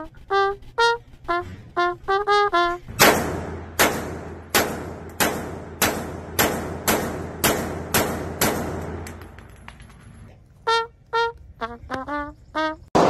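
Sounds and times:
handgun shots ringing indoors: 3.0 - 9.2.

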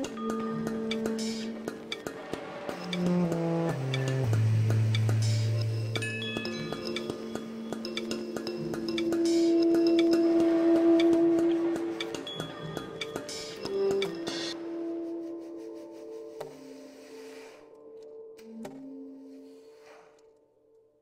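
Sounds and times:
electronic backing with bell-like tones: 0.0 - 15.3.

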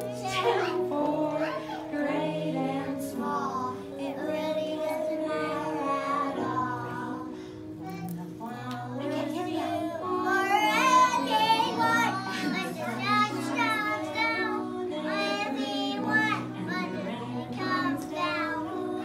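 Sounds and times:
children singing together: 0.0 - 19.0
music playing: 0.0 - 19.0.

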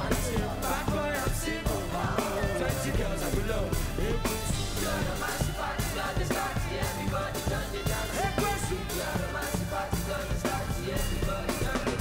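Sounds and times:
drum kit beat: 0.0 - 12.0
electric bass guitar: 0.0 - 12.0.

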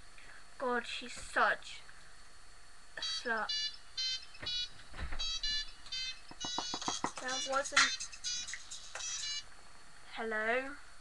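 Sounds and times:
phone ringtone beeps: 3.0 - 9.4.

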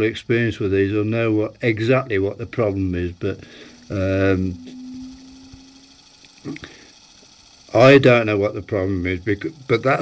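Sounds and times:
heater whirring: 0.0 - 10.0
man humming: 3.3 - 6.8.

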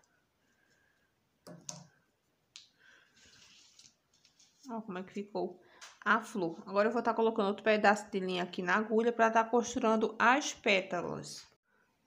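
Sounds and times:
fabric rustling: 3.0 - 4.8.

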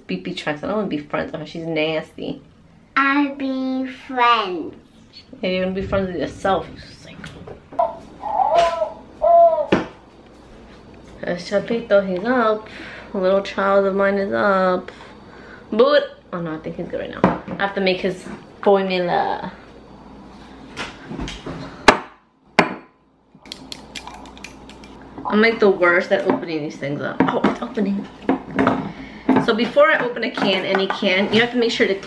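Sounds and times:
baby crying: 7.8 - 9.8.

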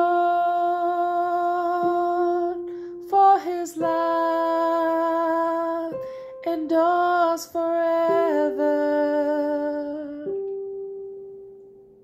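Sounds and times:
person singing: 0.0 - 10.7.

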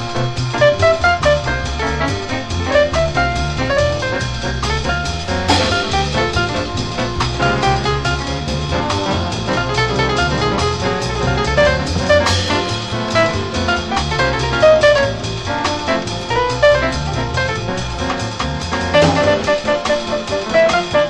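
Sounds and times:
bass: 0.0 - 21.0
drum kit beat: 0.0 - 21.0
piano: 0.0 - 21.0.

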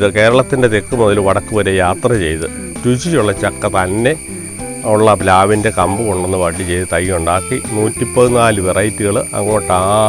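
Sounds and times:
high-pitched insect drone: 0.0 - 10.0.

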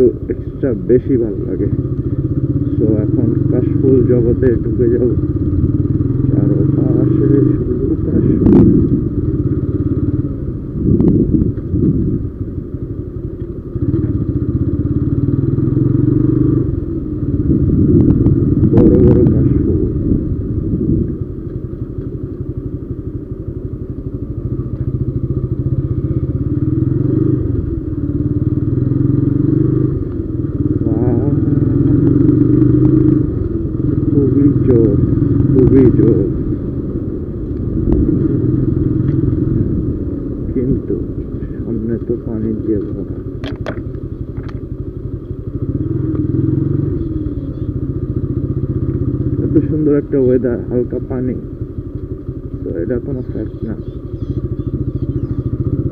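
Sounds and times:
motorcycle engine running: 0.0 - 55.9
road and wind noise: 0.0 - 55.9.

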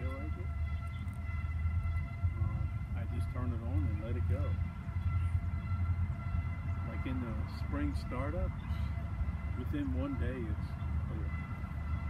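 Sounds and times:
freight train cars rumbling: 0.0 - 12.0.

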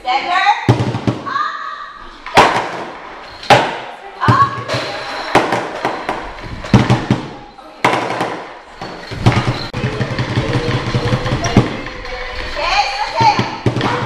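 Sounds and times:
loud drum thumps: 0.7 - 1.3.

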